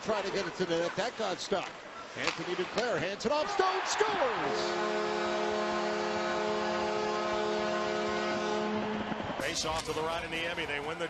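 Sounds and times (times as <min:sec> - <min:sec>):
crowd cheering: 0:03.3 - 0:11.0
goal horn low tone: 0:04.5 - 0:09.3.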